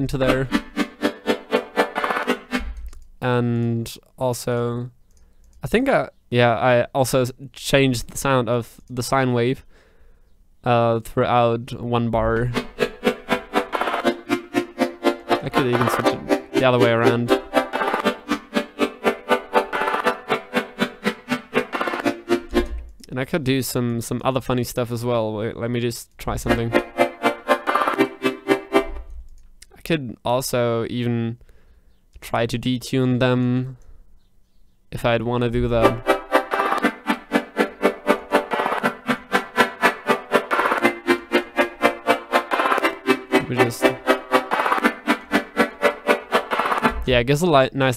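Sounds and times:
pulsing synthesizer chord: 0.0s - 2.7s, 12.5s - 22.9s, 26.4s - 29.1s, 35.8s - 47.1s.

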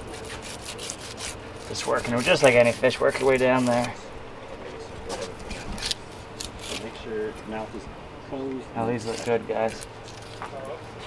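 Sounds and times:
knife cutting through fish skin: 0.0s - 3.9s, 5.4s - 6.9s.

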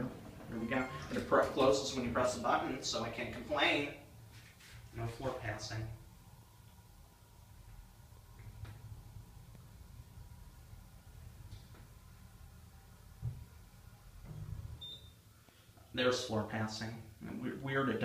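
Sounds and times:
elevator hum: 0.0s - 3.1s.

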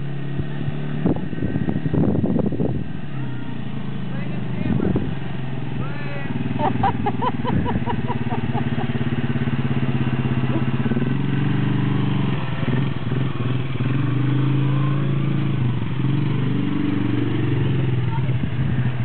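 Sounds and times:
atv engine running: 0.0s - 19.0s.

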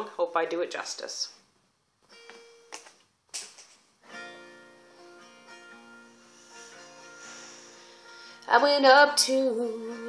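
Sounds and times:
acoustic guitar picked notes: 2.1s - 2.9s, 4.0s - 10.0s.

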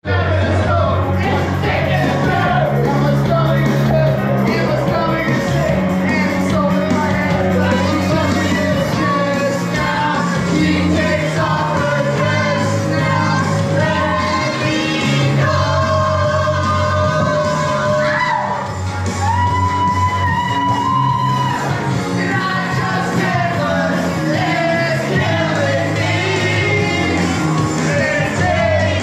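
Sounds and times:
man singing into microphone: 0.1s - 18.5s
pop-rock backing track: 0.3s - 29.0s
people shouting: 11.2s - 23.2s.

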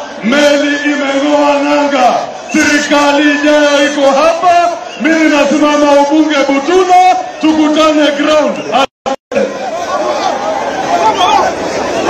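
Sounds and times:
man calling out: 0.0s - 9.5s
crowd chatter: 0.0s - 12.0s.

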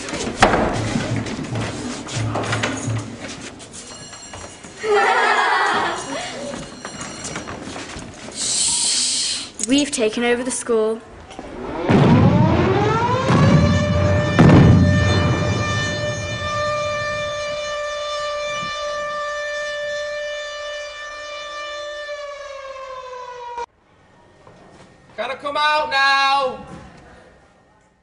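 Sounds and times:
air-raid siren wailing: 11.1s - 23.7s
deep boom: 11.2s - 19.0s.

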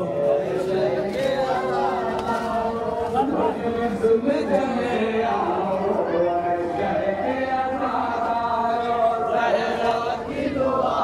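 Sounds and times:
men chanting in unison: 0.0s - 11.0s.

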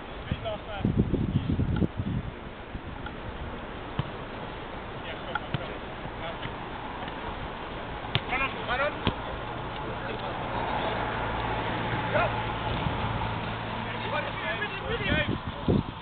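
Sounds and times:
steady background hiss: 0.0s - 16.0s
distant players calling: 2.9s - 15.2s
ball kicks: 3.9s - 4.2s, 5.3s - 7.2s, 8.1s - 9.3s.

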